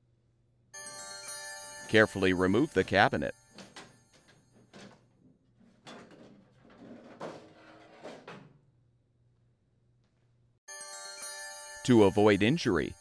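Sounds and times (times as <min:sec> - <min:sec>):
sheet metal scraping and knocking: 0:04.5 - 0:08.6.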